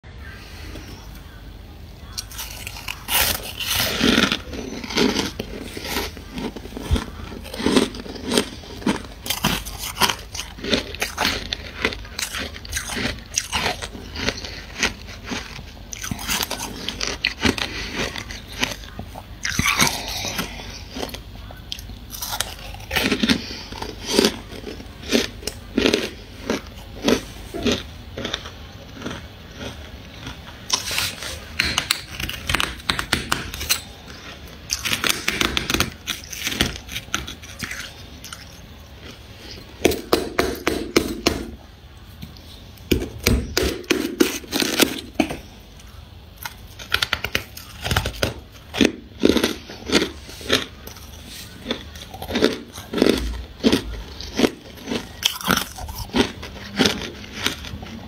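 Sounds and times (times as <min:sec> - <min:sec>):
person chewing ice crunching: 0:00.7 - 0:58.0.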